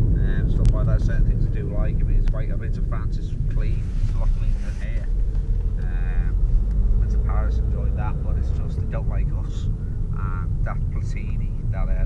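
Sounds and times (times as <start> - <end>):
car engine rumble: 0.0 - 12.0
road noise inside car: 0.0 - 12.0
person speaking: 0.1 - 6.4.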